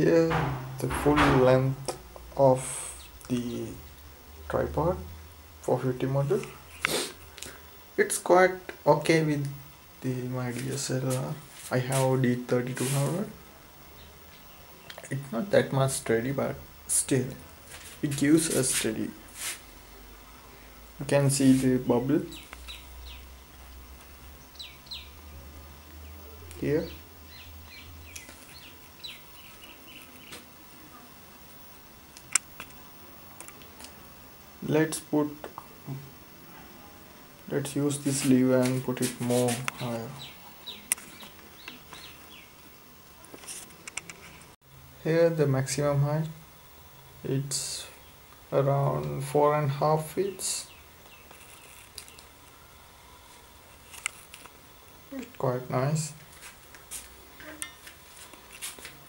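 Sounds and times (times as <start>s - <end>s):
bird chirping: 22.2s - 23.6s, 24.3s - 25.3s, 26.0s - 30.5s, 39.3s - 42.6s.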